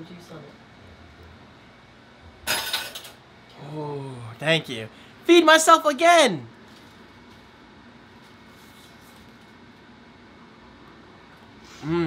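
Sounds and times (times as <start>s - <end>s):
man humming mmm: 11.7s - 12.0s.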